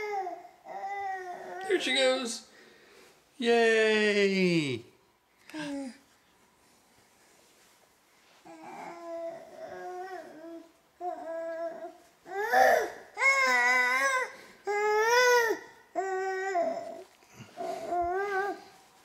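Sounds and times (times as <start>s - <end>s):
baby babbling: 8.5s - 17.0s.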